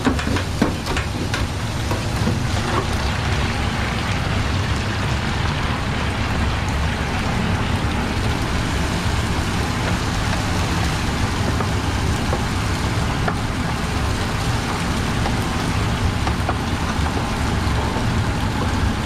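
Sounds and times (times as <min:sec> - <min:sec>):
metal fryer baskets clinking: 0:00.0 - 0:03.2
oil sizzling in deep fryer: 0:00.0 - 0:19.0.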